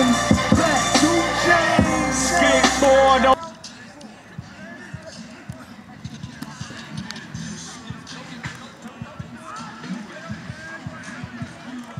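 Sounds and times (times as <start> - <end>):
music: 0.0 - 11.9.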